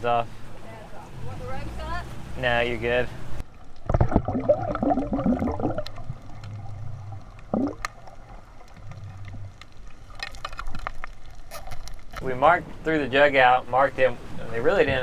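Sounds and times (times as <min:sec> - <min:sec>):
low hum: 0:03.2 - 0:12.9
underwater gurgling and bubbling: 0:03.8 - 0:10.2.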